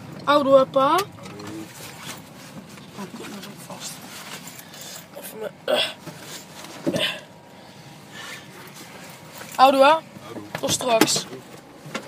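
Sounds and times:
car cabin road and engine noise: 0:00.0 - 0:12.0.

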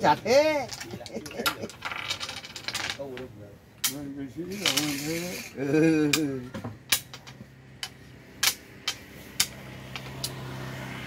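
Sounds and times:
wooden pieces clacking on table: 0:00.6 - 0:10.4
low engine hum: 0:06.0 - 0:11.0.

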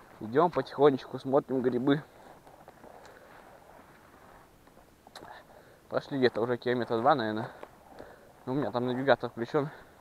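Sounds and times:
footsteps on forest floor: 0:00.0 - 0:04.9, 0:06.2 - 0:10.0.

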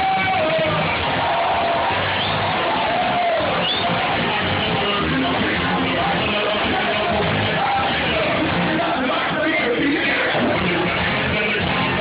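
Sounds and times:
crowd cheering: 0:00.0 - 0:12.0
live band playing: 0:00.0 - 0:12.0.

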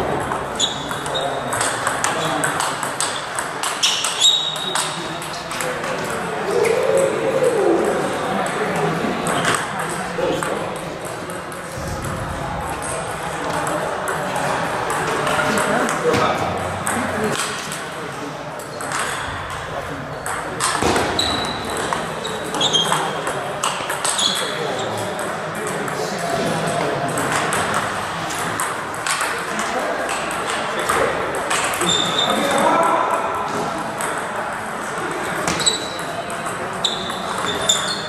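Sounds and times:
short high squeaks: 0:03.8 - 0:04.8, 0:36.8 - 0:38.0.

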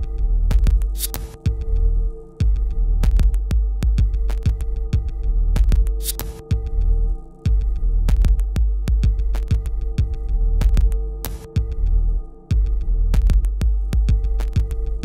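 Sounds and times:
throbbing bass drone: 0:00.0 - 0:15.0.

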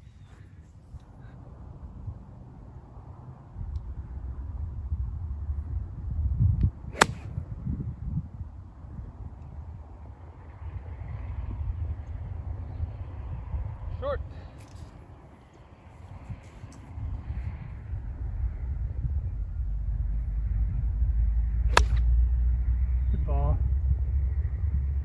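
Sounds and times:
wind rumble on microphone: 0:00.0 - 0:25.0
golf club striking ball: 0:06.9 - 0:07.3, 0:21.7 - 0:22.1.

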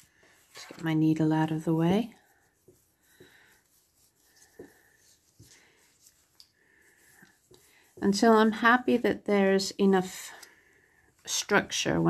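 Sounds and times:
soft wool rustles: 0:00.0 - 0:12.0.

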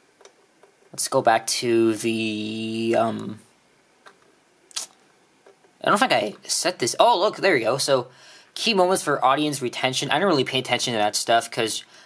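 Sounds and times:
man's voice: 0:01.0 - 0:03.4.

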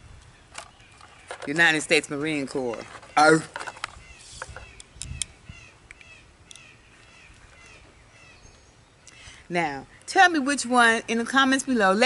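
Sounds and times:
birds chirping: 0:00.0 - 0:12.0
eyeglasses clicking: 0:03.3 - 0:07.2.

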